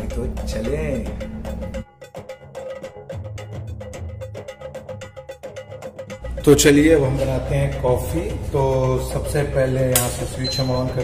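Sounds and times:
held tone: 0:10.0 - 0:11.0.

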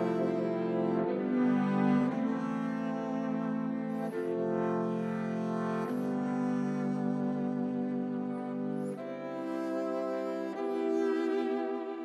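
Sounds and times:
electric violin bowed low notes: 0:00.0 - 0:12.0.

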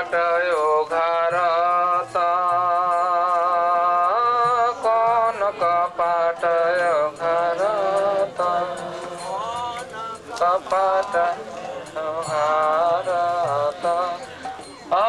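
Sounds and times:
man singing into microphone: 0:00.0 - 0:15.0.

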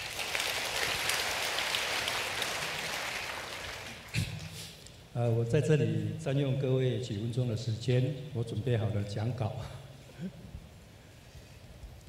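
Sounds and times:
audience applause: 0:00.0 - 0:04.2.

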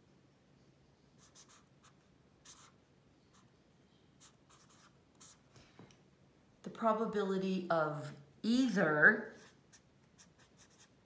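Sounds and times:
felt-tip pen scratching on paper: 0:01.2 - 0:03.5, 0:04.2 - 0:05.4, 0:09.2 - 0:11.0.

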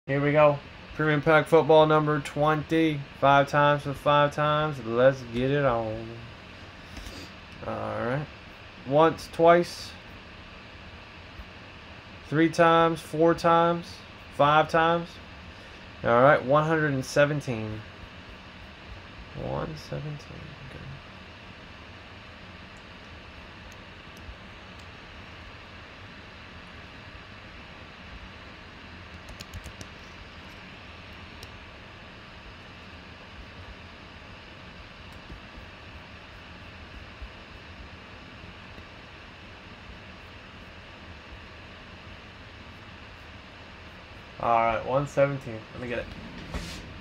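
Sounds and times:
computer fan hiss: 0:00.1 - 0:47.0
keystrokes: 0:29.1 - 0:30.0.

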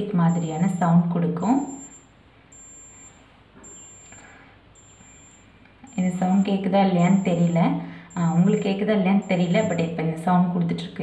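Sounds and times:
thermometer high-pitched beeps: 0:00.0 - 0:11.0.

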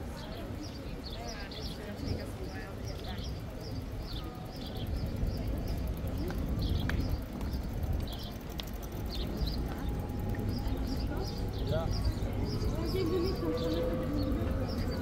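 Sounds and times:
murmur of people talking: 0:00.0 - 0:15.0
steady low rumble: 0:03.6 - 0:15.0
footsteps on paving stones: 0:05.8 - 0:12.9.

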